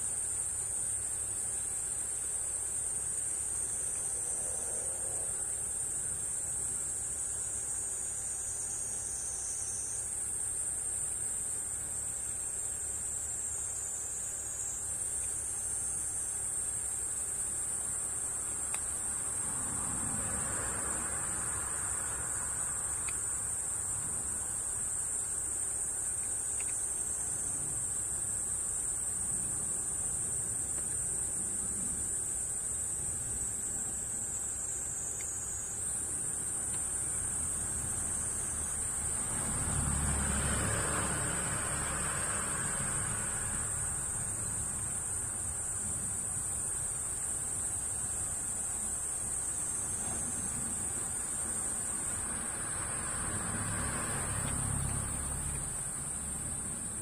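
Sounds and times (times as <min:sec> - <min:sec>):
high-pitched insect chorus: 0:00.0 - 0:57.0.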